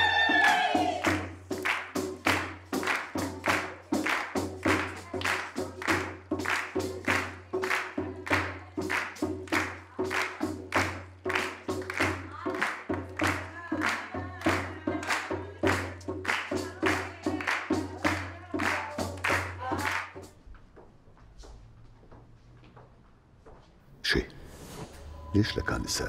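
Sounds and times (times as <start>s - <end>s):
frame drums beating: 0.0s - 20.4s
hands clapping: 0.2s - 20.3s.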